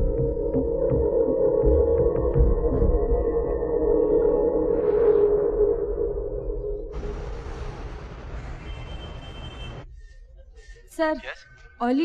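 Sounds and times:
droning low tone: 0.0 - 7.0.

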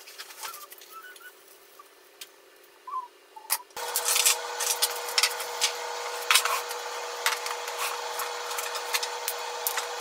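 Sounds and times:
aluminium foil rustling: 0.0 - 1.6, 3.8 - 10.0
steady hum: 3.8 - 10.0.

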